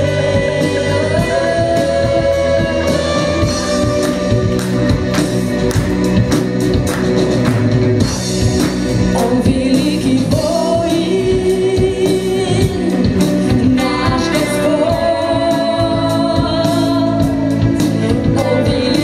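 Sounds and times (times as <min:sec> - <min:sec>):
band playing worship song: 0:00.0 - 0:19.0.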